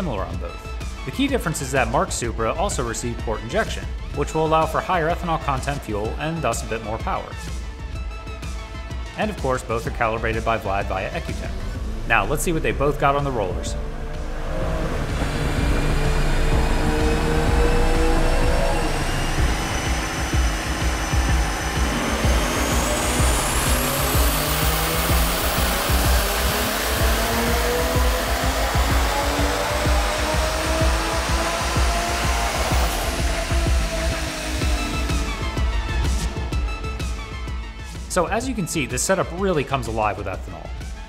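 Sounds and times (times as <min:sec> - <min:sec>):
car engine revving on dyno: 0:10.5 - 0:38.0
turbo whine: 0:10.6 - 0:38.1.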